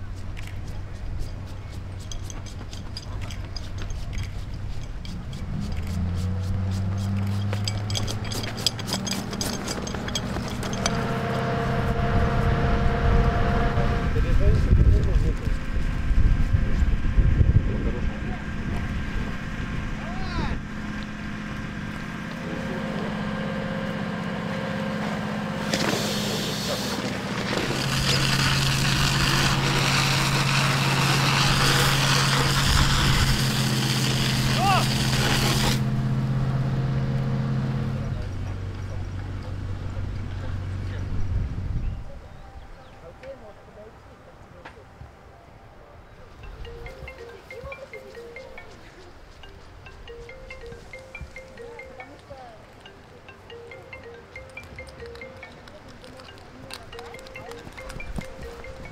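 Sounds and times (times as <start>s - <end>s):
vehicle engine running: 0.0s - 41.8s
outdoor voices: 0.0s - 58.9s.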